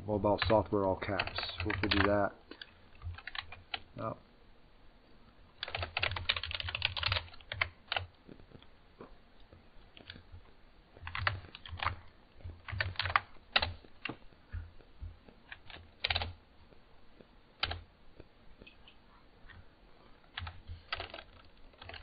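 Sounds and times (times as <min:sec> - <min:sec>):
typing on computer keyboard: 0:00.4 - 0:03.8, 0:05.6 - 0:08.1, 0:11.0 - 0:14.2, 0:15.4 - 0:16.4, 0:17.6 - 0:17.8, 0:20.3 - 0:22.0.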